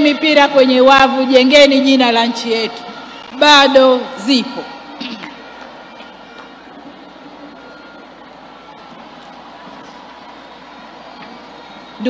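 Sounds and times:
faint crowd noise: 0:00.0 - 0:12.0
scattered clapping: 0:05.0 - 0:07.0.

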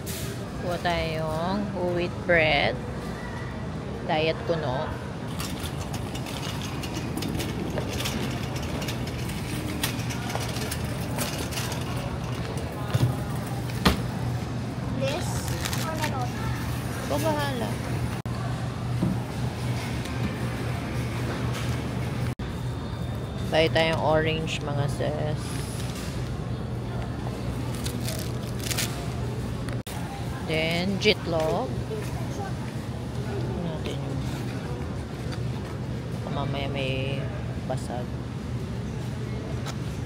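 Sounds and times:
supermarket background hum: 0:00.0 - 0:40.0
shopping trolley rolling on tiles: 0:05.2 - 0:14.2.

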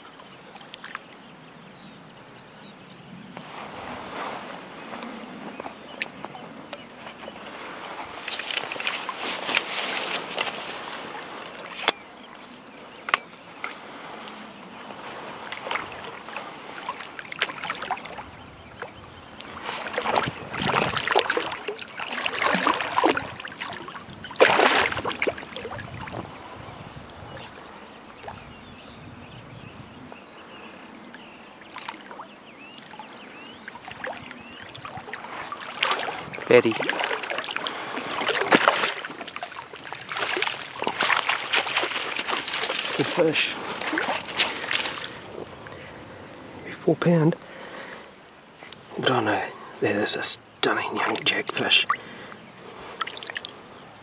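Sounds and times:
fish splashing in shallow water: 0:03.3 - 0:28.5, 0:31.0 - 0:46.6, 0:51.0 - 0:53.6.

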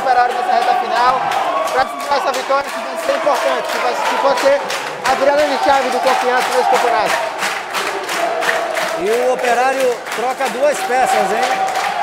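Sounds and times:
stadium crowd chanting: 0:02.6 - 0:09.1.

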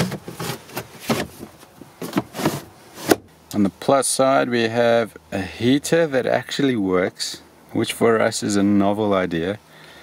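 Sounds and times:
rubber cover scraping: 0:00.0 - 0:03.2.

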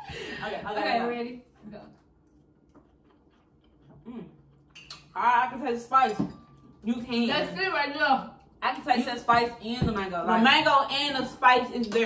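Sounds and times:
person humming mmm: 0:04.0 - 0:04.4.

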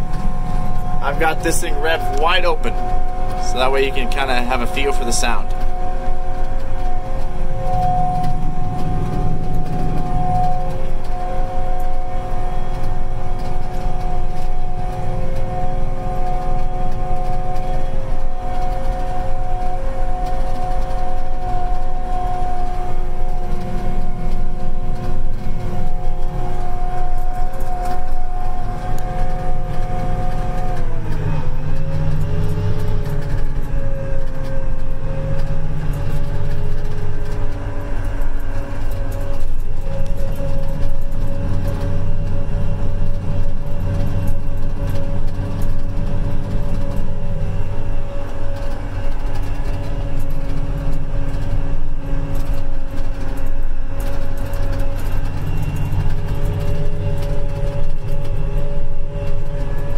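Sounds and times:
engine drone: 0:00.0 - 0:59.9
high mechanical whine: 0:00.0 - 0:59.9.

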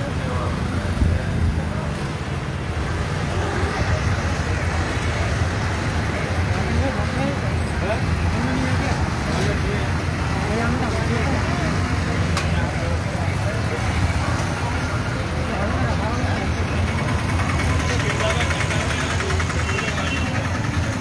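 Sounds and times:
auto-rickshaw engine pulsing: 0:00.0 - 0:21.0
motorcycle engines rumbling: 0:00.0 - 0:21.0
people talking: 0:00.0 - 0:21.0.

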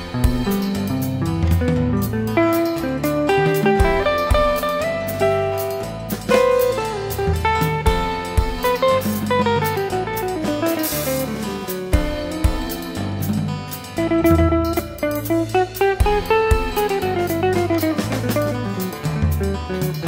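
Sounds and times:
bass line: 0:00.0 - 0:20.0
drum kit: 0:00.0 - 0:20.0
electric guitar melody: 0:00.0 - 0:20.0.

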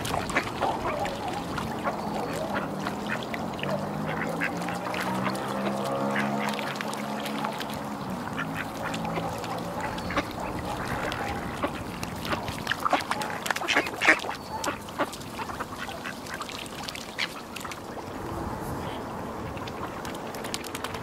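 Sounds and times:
waterfowl calling: 0:00.0 - 0:18.0.

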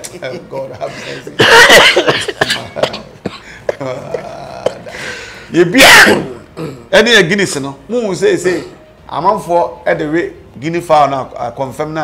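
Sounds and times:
man chuckling: 0:00.5 - 0:05.0.

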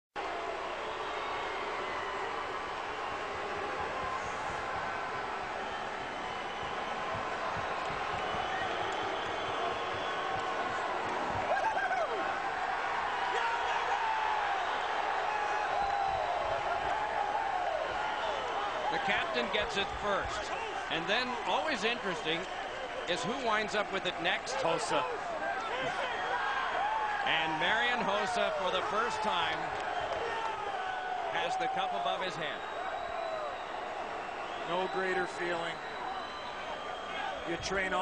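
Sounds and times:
crowd cheering and shouting: 0:00.2 - 0:38.0.

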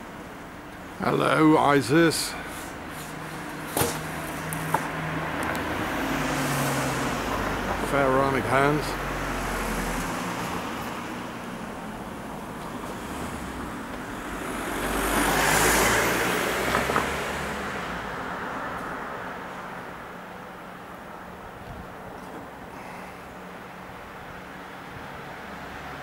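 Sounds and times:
background traffic hum: 0:00.0 - 0:26.0
car passing by: 0:03.8 - 0:20.0.

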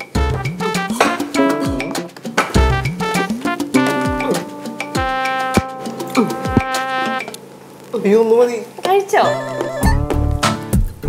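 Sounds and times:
buzzy comedy music cue: 0:00.0 - 0:07.4.

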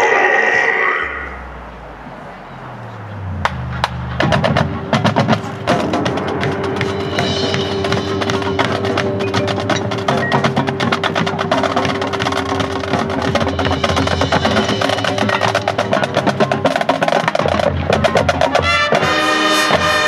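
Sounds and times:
marching band playing: 0:01.3 - 0:20.0
low bass line: 0:01.4 - 0:16.6
drum and percussion strikes: 0:03.3 - 0:20.0.

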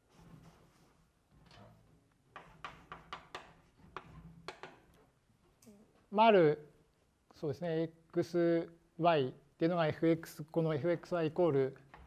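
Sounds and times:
chalk tapping on blackboard: 0:02.3 - 0:04.8.

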